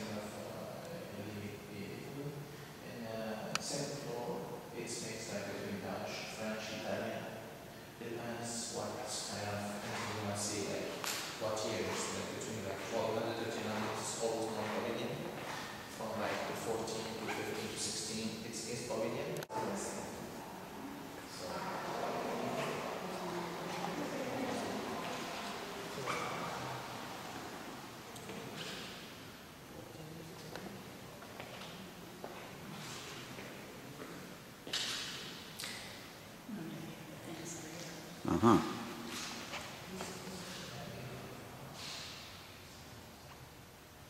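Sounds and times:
person humming mm: 38.2 - 38.8.

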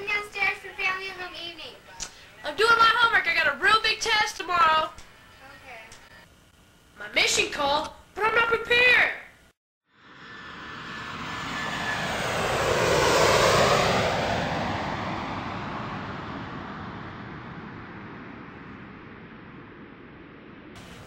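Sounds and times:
jet airliner passing by: 9.9 - 21.0.

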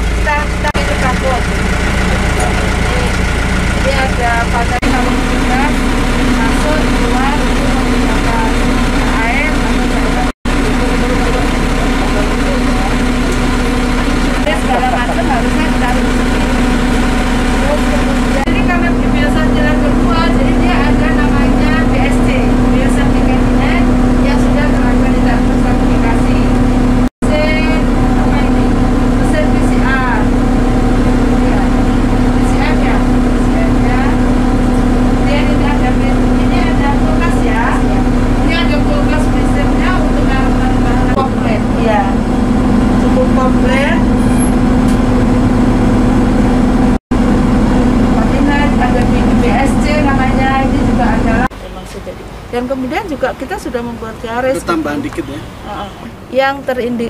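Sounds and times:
engine idling: 0.0 - 57.0
indistinct voices: 0.0 - 57.0.

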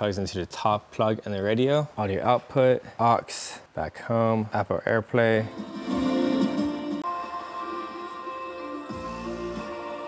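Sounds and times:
electronic music on car speakers: 5.4 - 10.0.

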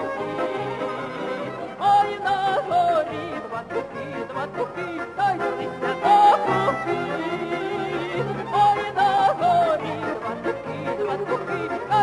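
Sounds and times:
folk instrument accompaniment: 0.0 - 12.0
woman singing folk song: 1.6 - 12.0.

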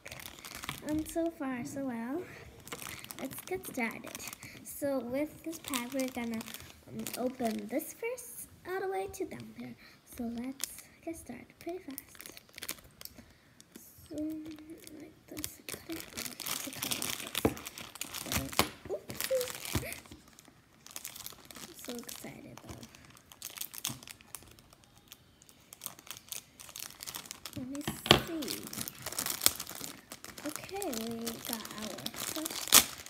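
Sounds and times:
plastic packaging crinkling: 0.0 - 7.9, 11.6 - 33.0.

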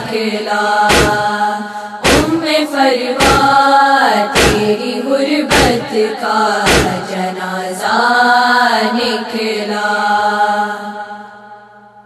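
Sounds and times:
women chanting a lament: 0.0 - 11.8.

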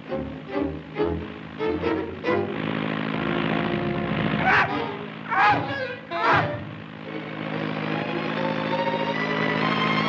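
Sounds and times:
orchestral cartoon music: 0.0 - 10.0.

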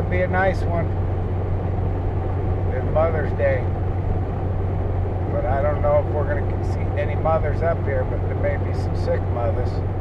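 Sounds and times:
car cabin road and engine drone: 0.0 - 10.0.

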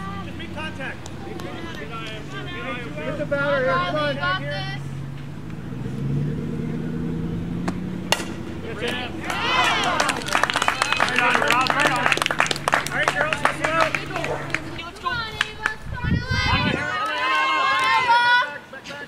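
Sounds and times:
people clapping: 0.5 - 2.4, 8.8 - 15.9, 16.7 - 18.3
bat cracking against ball: 7.6 - 10.2
people shouting: 8.7 - 15.3, 16.0 - 18.6.

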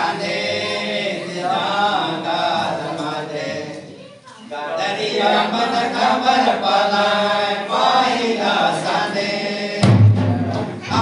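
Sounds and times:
group singing in chorus: 0.0 - 11.0.

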